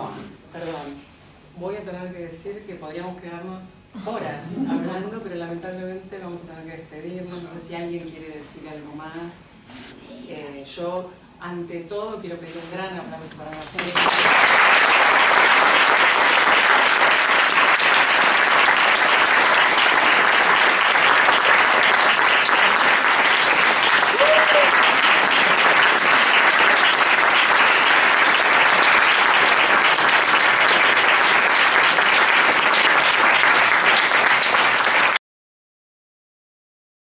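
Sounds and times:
audience applauding: 13.6 - 35.2.

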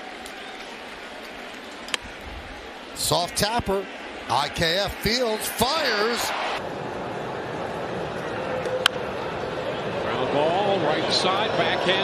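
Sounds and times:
stadium crowd murmur: 2.7 - 12.0.

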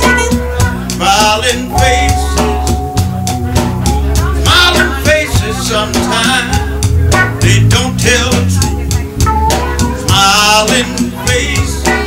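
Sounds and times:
live soul band playing: 0.0 - 12.0
person singing: 0.0 - 12.0.

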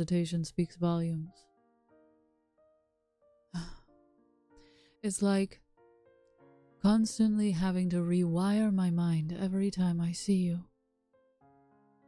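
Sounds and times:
quiet piano music: 0.0 - 12.0
woman sighing: 3.5 - 4.0.

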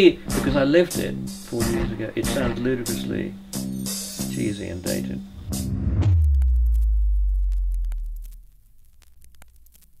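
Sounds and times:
deep bass boom: 5.3 - 8.5.

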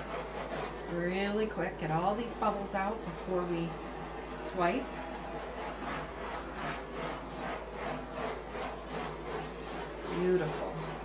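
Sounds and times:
torch flame hissing: 0.0 - 11.0.

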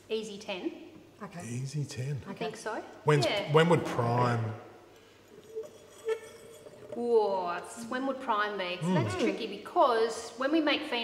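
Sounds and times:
faint steady hum: 0.0 - 10.8.

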